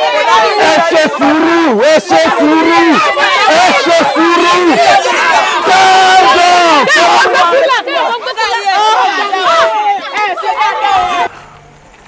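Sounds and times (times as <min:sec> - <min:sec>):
crowd shouting: 0:00.0 - 0:11.3.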